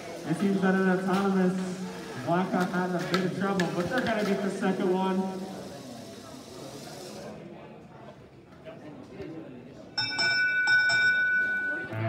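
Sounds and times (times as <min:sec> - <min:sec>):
steady noise haze: 0:00.0 - 0:07.5
indistinct background voices: 0:00.0 - 0:09.9.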